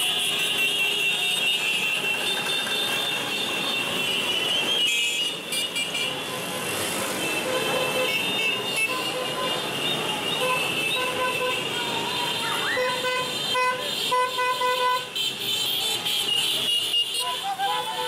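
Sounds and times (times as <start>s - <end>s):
horns honking: 0.0s - 18.0s.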